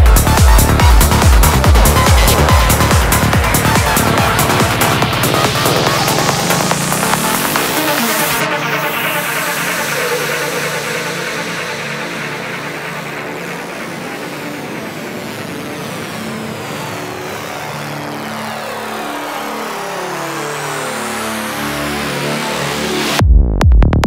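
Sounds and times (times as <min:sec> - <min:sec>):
stepping synth sequences: 0:00.0 - 0:17.8
synth sweeps: 0:00.0 - 0:23.2.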